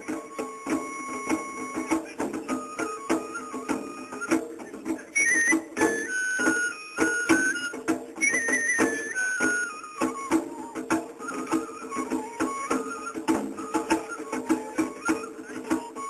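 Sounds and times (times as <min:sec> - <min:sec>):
bamboo flute melody: 0:00.0 - 0:16.0
quick steady drumbeats: 0:00.0 - 0:16.0.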